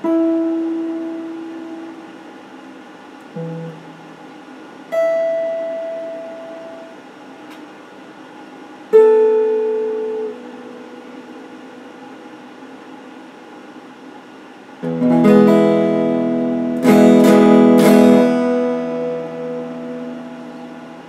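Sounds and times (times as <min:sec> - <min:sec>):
electric guitar single notes: 0:03.3 - 0:07.0, 0:08.9 - 0:12.0, 0:14.8 - 0:21.0.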